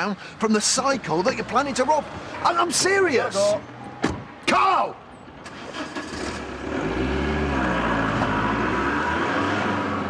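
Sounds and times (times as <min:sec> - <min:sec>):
car engine driving off: 0:05.4 - 0:10.0.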